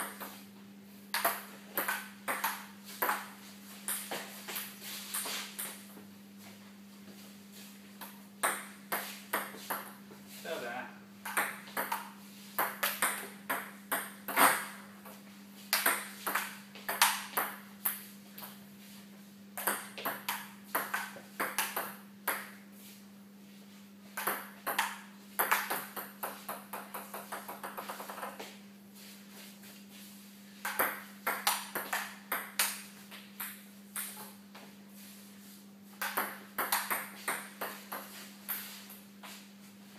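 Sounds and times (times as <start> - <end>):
low electrical hum: 0.0 - 39.9.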